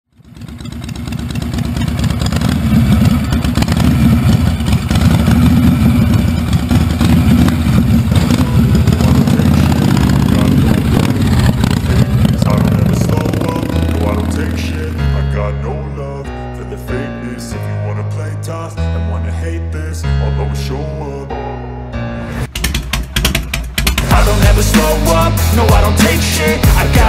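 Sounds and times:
motorcycle engine running loud: 0.1s - 15.2s, 22.5s - 27.0s.

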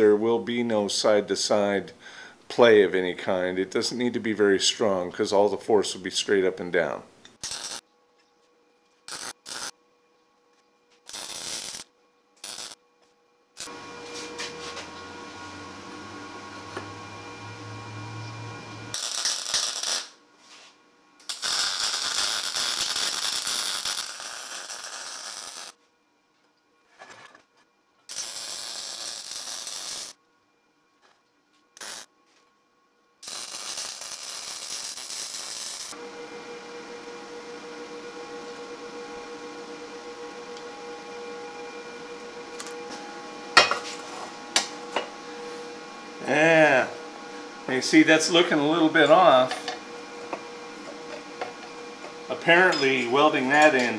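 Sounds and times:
steady hum: 0.0s - 53.9s
welding arc crackle: 7.4s - 7.8s, 9.1s - 9.8s, 11.0s - 12.8s, 18.9s - 20.2s, 21.2s - 25.8s, 28.1s - 30.2s, 31.8s - 32.1s, 33.2s - 36.0s.

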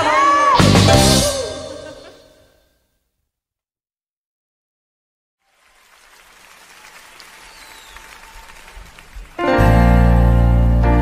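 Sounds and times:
audience applause: 5.4s - 9.8s.

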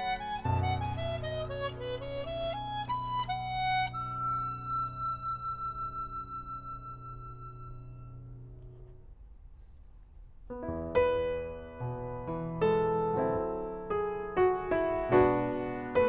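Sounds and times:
chromatic harmonica playing: 0.0s - 8.5s.

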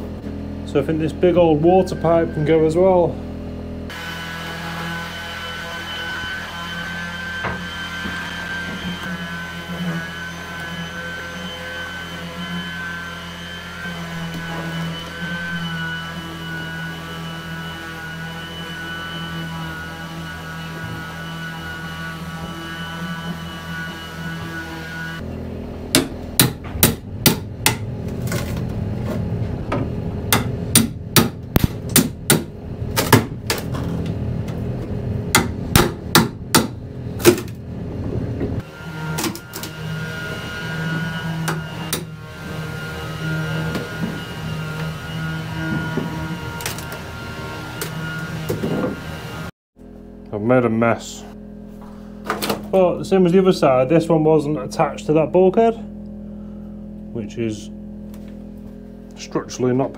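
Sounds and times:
steady hum with held tones: 0.0s - 4.1s, 5.2s - 59.9s.

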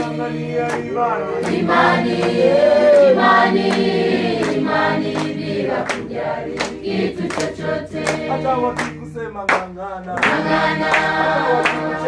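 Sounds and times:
choir singing unaccompanied: 0.0s - 9.2s, 10.1s - 12.0s
hands clapping on the beat: 0.0s - 12.0s.

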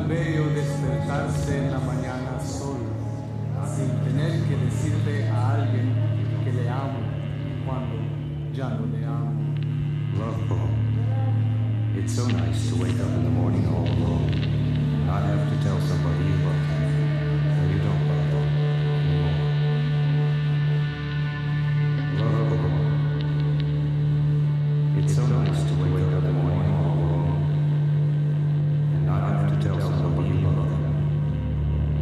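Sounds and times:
droning music: 0.0s - 32.0s.

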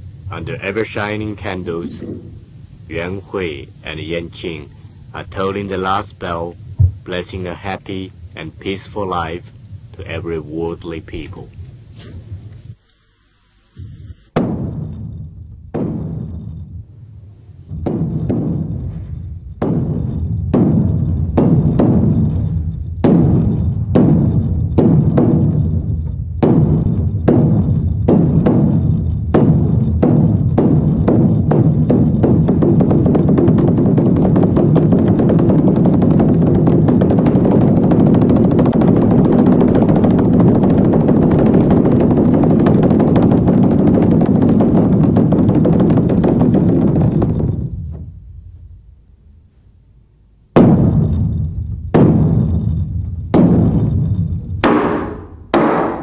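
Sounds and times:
large drum blows and roll: 0.0s - 11.6s, 14.4s - 16.9s, 17.7s - 48.9s, 50.5s - 56.0s.

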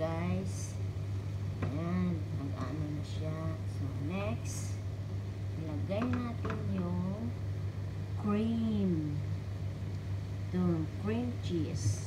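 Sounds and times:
steady low hum: 0.0s - 12.0s
person's voice: 1.6s - 4.8s, 5.6s - 7.4s, 8.2s - 9.2s, 10.5s - 12.0s.

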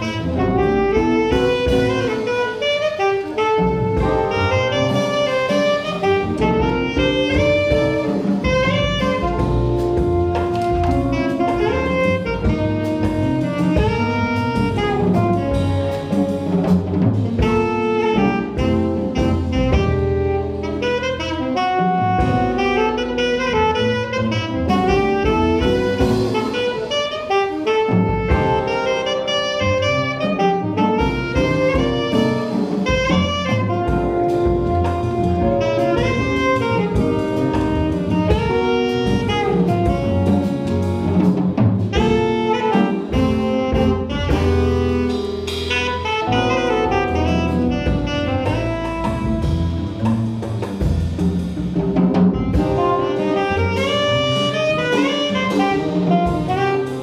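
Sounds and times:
alto saxophone melody: 0.0s - 57.0s
drum kit with ride cymbal: 0.0s - 57.0s
walking upright bass: 0.0s - 57.0s.

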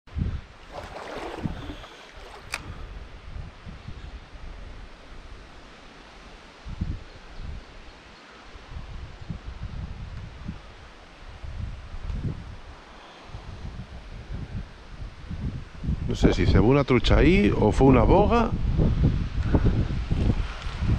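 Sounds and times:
wind buffeting microphone: 0.1s - 5.5s, 8.6s - 20.9s
river water rushing: 0.6s - 2.7s.

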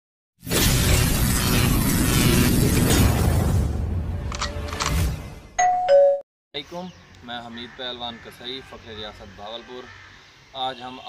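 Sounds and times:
loud dense crash: 0.4s - 4.2s.

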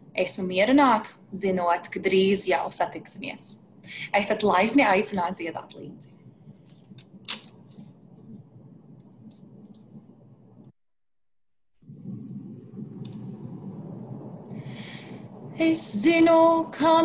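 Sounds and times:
a cappella singing: 15.6s - 17.0s.

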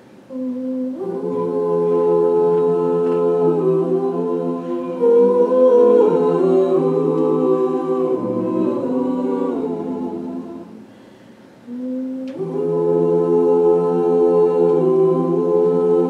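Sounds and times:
a cappella group singing chords: 0.0s - 16.0s
single low voice singing: 0.3s - 10.9s, 11.6s - 16.0s.

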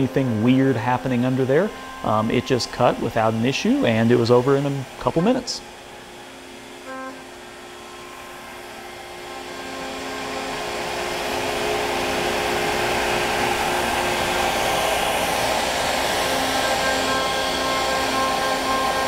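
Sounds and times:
router spindle whine: 0.0s - 19.0s
rushing vacuum-like noise: 0.0s - 19.0s.

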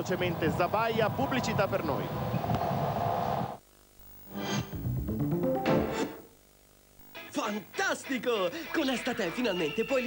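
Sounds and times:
broadcast sound: 4.7s - 6.4s
rising jingle notes: 4.8s - 6.3s.

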